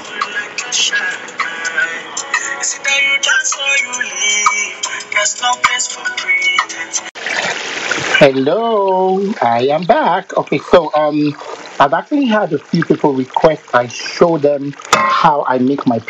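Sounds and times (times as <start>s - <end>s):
background music with singing: 0.0s - 7.2s
sauce bubbling in a pot: 8.2s - 15.2s.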